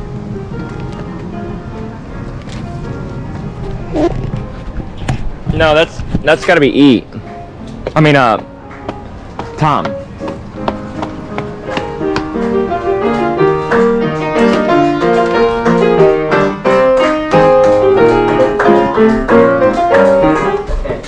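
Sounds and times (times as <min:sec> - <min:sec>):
lively piano playing: 0:00.0 - 0:21.0.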